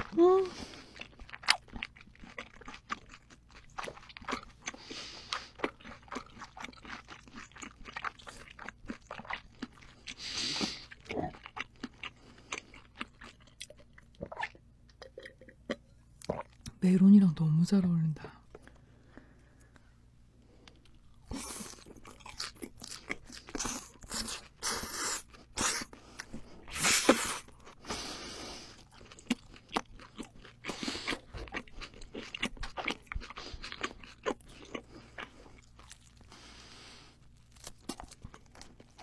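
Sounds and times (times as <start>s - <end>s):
close-miked chewing: 0.0s - 16.7s, 20.6s - 39.0s.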